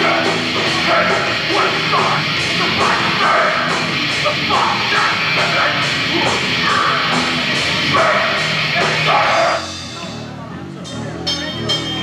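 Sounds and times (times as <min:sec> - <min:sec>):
distorted electric guitars: 0:00.0 - 0:12.0
drum kit: 0:00.0 - 0:12.0.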